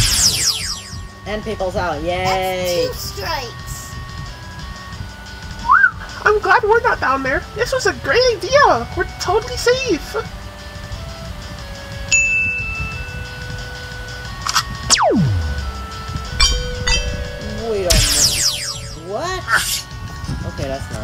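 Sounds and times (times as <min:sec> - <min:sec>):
falling sweeps: 0:00.0 - 0:01.1, 0:14.9 - 0:19.8
falling glide sound effect: 0:00.0 - 0:01.2, 0:14.9 - 0:19.1
high steady tone: 0:00.0 - 0:01.2, 0:14.9 - 0:19.2
cartoon background music: 0:00.0 - 0:12.1, 0:12.8 - 0:21.0
chime-like tinkles: 0:12.1 - 0:13.9, 0:16.4 - 0:19.1.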